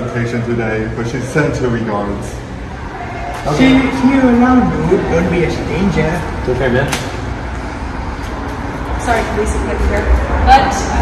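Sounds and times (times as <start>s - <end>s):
low garage rumble: 0.0s - 11.0s.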